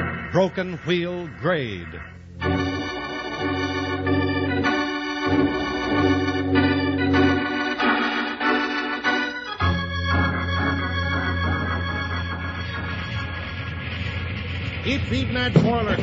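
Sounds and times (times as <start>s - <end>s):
organ playing held chords: 0.0s - 16.0s.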